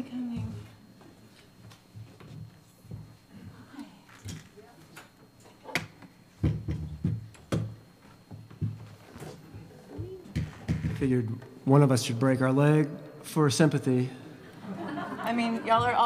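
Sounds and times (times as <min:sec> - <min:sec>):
knocks and thumps of handling: 0:05.7 - 0:09.4, 0:10.0 - 0:11.1.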